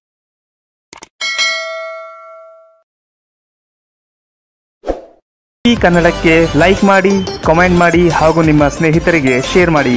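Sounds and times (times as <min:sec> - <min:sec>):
notification bell ding: 0:01.2 - 0:02.8.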